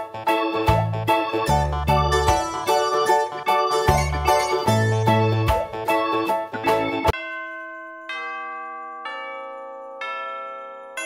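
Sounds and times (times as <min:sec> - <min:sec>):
bell-like chime music: 0:00.2 - 0:11.0.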